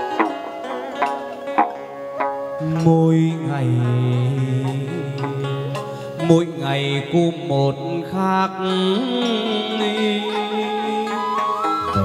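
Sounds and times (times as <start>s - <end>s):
plucked lute with sliding notes: 0.0s - 12.0s.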